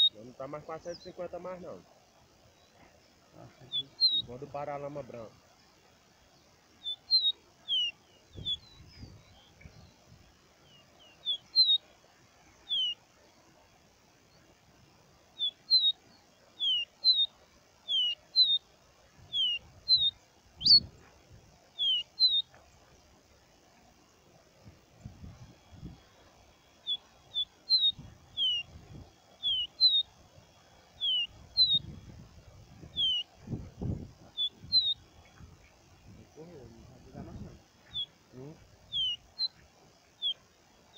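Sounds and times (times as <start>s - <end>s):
bird whistling song: 3.7s - 4.4s, 6.8s - 10.0s, 10.6s - 11.9s, 12.6s - 13.0s, 15.4s - 18.7s, 19.3s - 21.0s, 21.7s - 22.5s, 26.8s - 30.2s, 31.0s - 32.1s, 32.8s - 33.4s, 34.2s - 35.7s, 37.3s - 38.2s, 38.9s - 40.5s.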